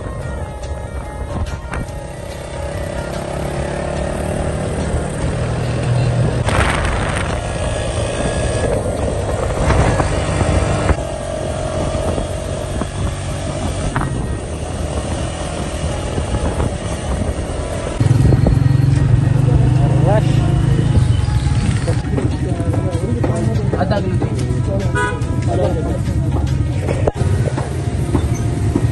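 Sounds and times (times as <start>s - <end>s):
road and wind noise: 0.0s - 28.9s
street traffic: 0.0s - 28.9s
motorcycle engine running: 0.4s - 28.9s.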